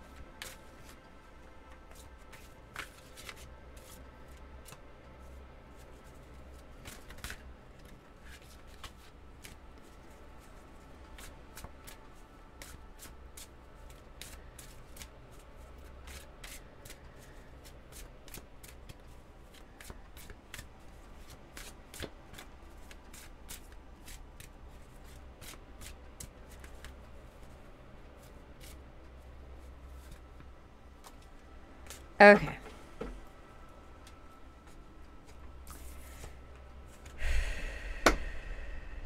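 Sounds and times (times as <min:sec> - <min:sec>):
cards shuffling: 0:00.4 - 0:01.0, 0:01.8 - 0:04.9, 0:05.8 - 0:10.5
faint low hum: 0:23.6 - 0:39.0.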